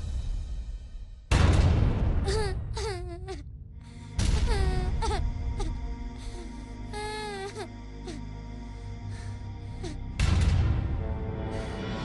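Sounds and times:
girl crying and sobbing: 2.2s - 8.3s, 9.0s - 10.2s.

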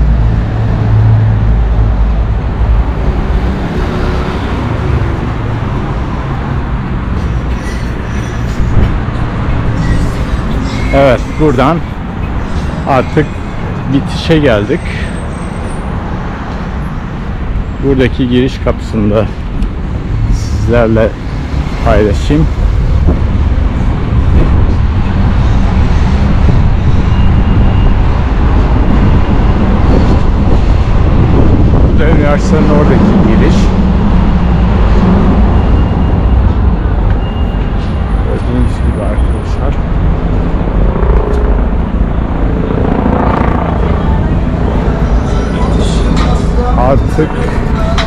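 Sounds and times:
road traffic rumble: 0.0s - 48.0s.

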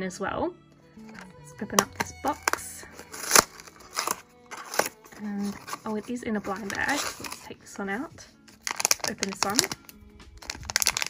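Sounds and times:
paperboard box tearing open: 1.8s - 7.5s, 8.5s - 9.8s, 10.4s - 11.0s.

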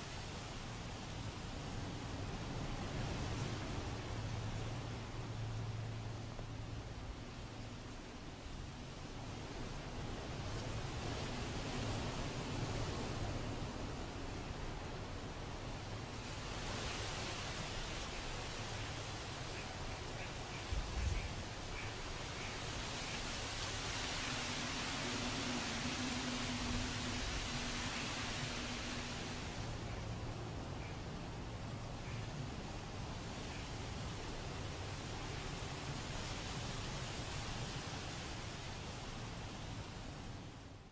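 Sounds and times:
steady rushing noise: 0.0s - 40.9s.

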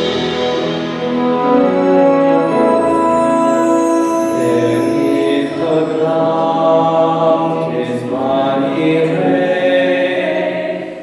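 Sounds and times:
church choir singing: 2.4s - 11.0s.

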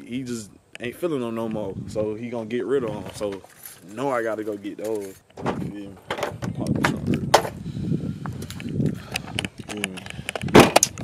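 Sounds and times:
small clicks and knocks: 8.4s - 11.0s
loud thud: 10.5s - 10.9s.

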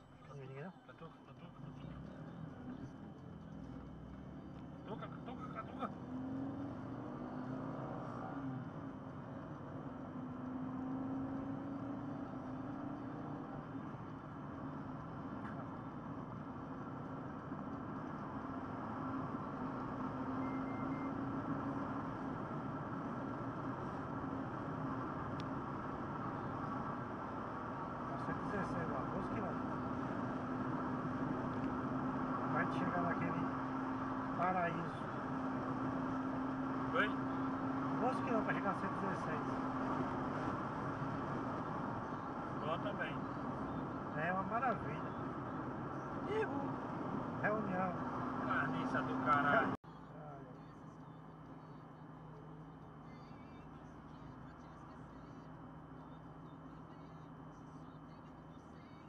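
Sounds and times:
car engine hum: 0.0s - 59.0s.

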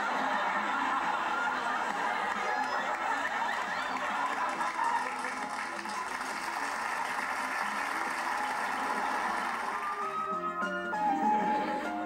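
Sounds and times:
studio audience laughter: 0.0s - 10.0s
music: 0.0s - 12.0s.

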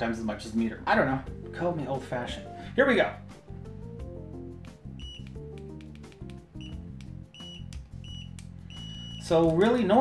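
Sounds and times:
background music: 0.0s - 10.0s
multimeter short high beeps: 5.0s - 5.3s, 6.6s - 9.3s.

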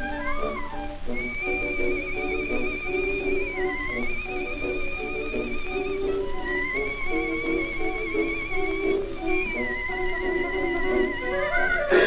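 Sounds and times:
dance orchestra playing a foxtrot: 0.0s - 12.0s.

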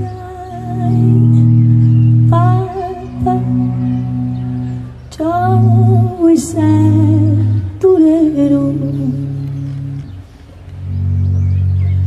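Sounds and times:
electric guitar sustained chord: 0.0s - 12.0s.

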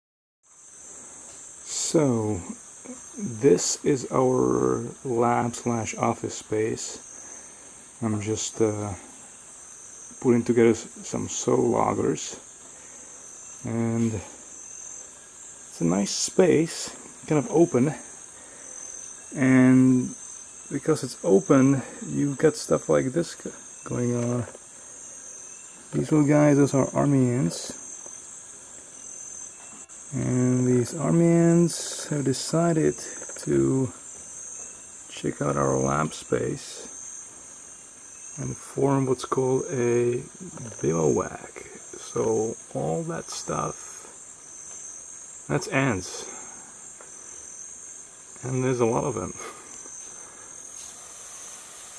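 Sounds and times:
insects droning: 0.4s - 51.9s.

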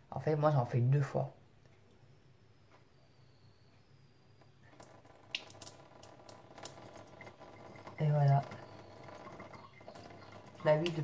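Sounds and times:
water dripping into sink: 4.4s - 11.0s.

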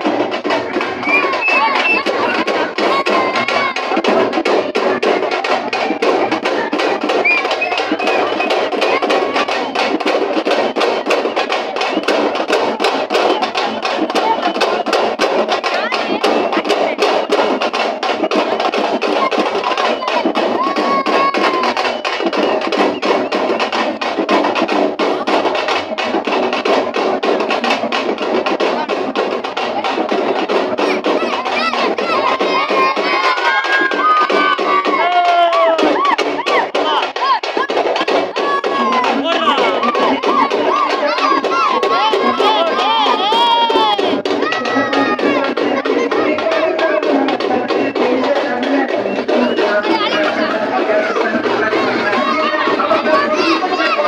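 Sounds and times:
music with fast dense drumming: 0.0s - 54.0s
street crowd noise: 0.0s - 54.0s.

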